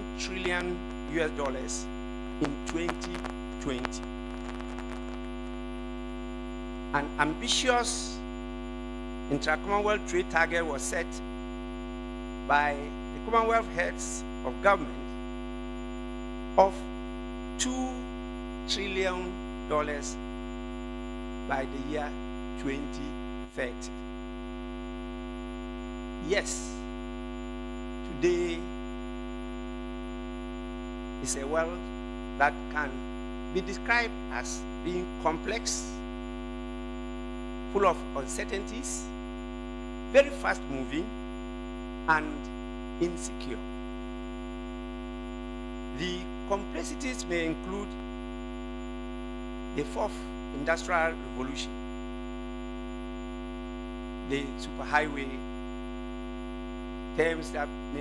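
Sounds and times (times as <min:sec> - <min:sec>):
electrical mains hum: 0:00.0 - 0:58.0.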